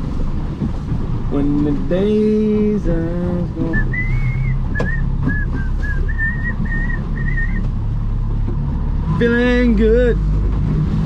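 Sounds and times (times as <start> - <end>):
boat motor drone: 0.0 - 11.0
person whistling a tune: 3.7 - 7.6.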